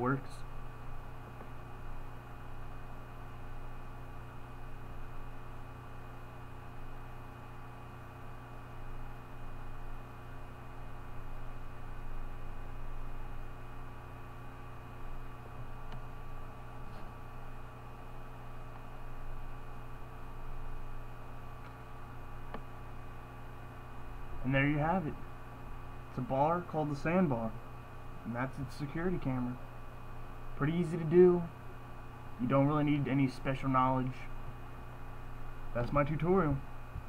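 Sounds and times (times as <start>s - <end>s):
electrical hum and hiss: 0.0s - 37.0s.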